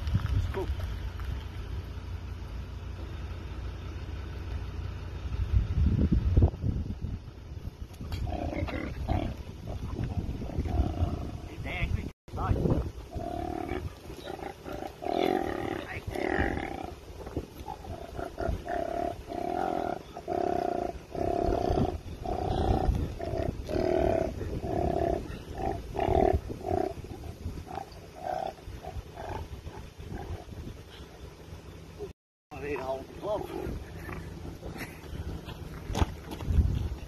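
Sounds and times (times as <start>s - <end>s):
koala growling: 8.1s - 11.6s, 13.1s - 31.0s.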